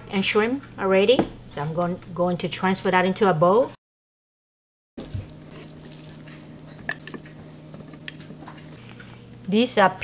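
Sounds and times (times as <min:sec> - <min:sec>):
steady low hum: 0:05.0 - 0:10.0.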